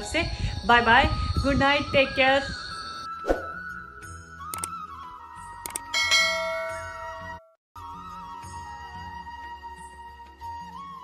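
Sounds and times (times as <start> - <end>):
soft music with flute melody: 2.5 - 11.0
quick clicks: 4.5 - 4.8, 5.6 - 5.9
bright bell chime: 6.0 - 7.5.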